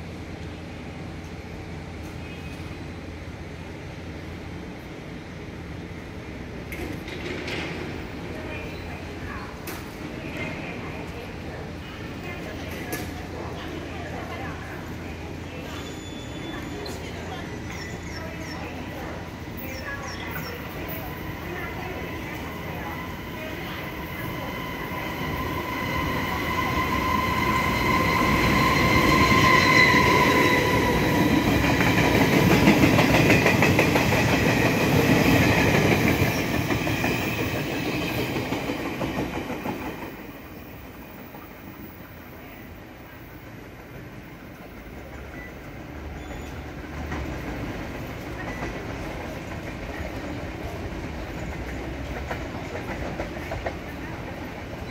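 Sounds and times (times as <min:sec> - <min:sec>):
train rumble with high whine: 0:00.0 - 0:54.9.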